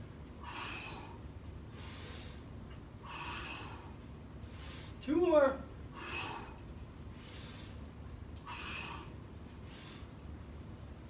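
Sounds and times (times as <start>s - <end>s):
elderly man breathing hard: 0.4s - 5.0s, 5.9s - 10.3s.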